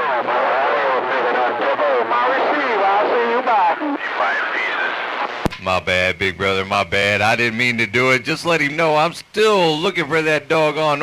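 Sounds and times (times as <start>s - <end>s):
person talking over radio speaker: 0.0s - 11.0s.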